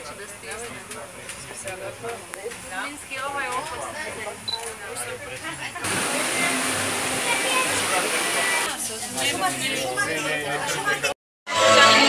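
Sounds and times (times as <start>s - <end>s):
woman speaking: 5.6s - 9.9s
water rushing into tank: 5.8s - 8.7s.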